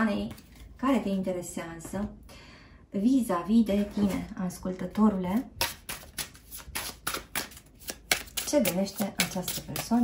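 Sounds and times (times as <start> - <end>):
cards being shuffled: 5.6 - 10.0.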